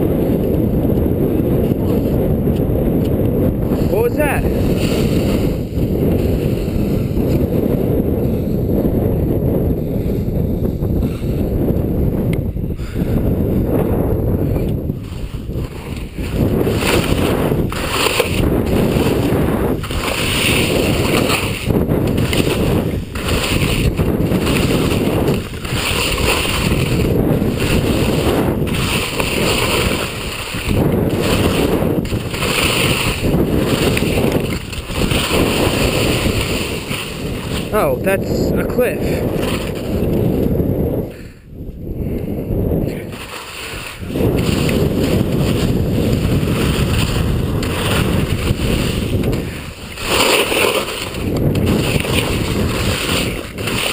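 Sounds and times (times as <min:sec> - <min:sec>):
wind buffeting microphone: 0:00.0 - 0:53.9
skis scraping over snow: 0:03.7 - 0:08.6, 0:14.5 - 0:40.4, 0:42.9 - 0:53.9.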